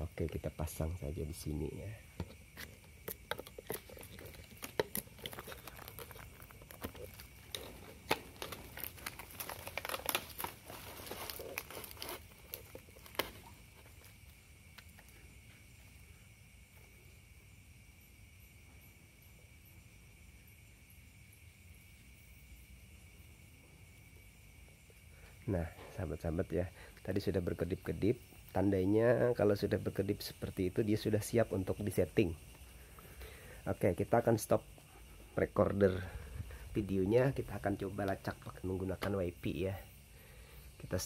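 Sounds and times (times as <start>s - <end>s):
plastic rustling and crinkling: 2.2s - 15.2s.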